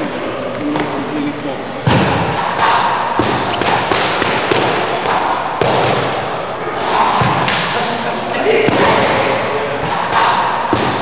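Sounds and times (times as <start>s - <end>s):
steady background hiss: 0.0s - 11.0s
gloves and feet thudding: 1.8s - 6.2s, 9.8s - 11.0s.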